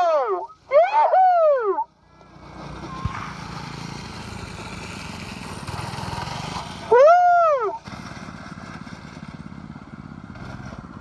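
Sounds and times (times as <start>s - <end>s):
go-kart engine running: 0.0s - 11.0s.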